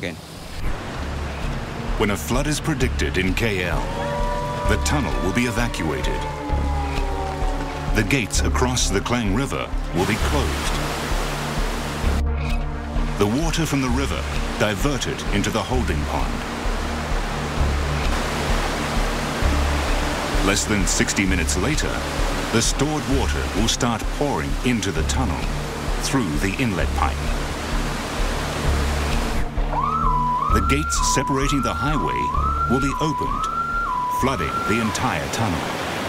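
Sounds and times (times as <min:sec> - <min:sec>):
floodwater rushing through floodgate: 0:00.0 - 0:36.0
low background music: 0:00.5 - 0:35.8.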